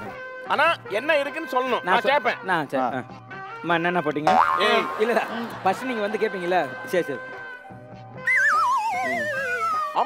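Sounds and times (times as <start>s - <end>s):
warbling descending whistle tone: 8.2s - 10.0s.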